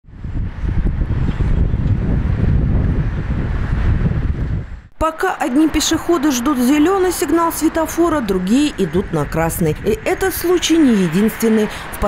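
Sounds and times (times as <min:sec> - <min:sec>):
wind buffeting microphone: 0:00.0 - 0:12.0
road traffic noise: 0:00.1 - 0:12.0.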